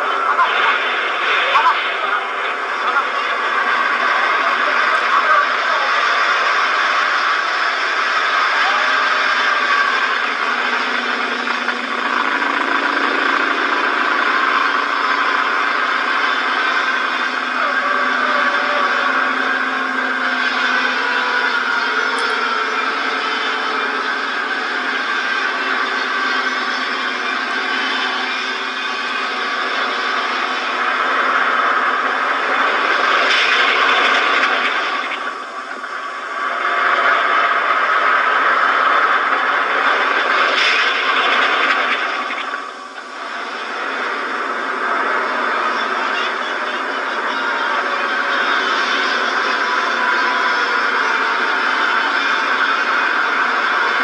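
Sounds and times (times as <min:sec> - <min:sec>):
bus engines running: 0:00.0 - 0:54.0.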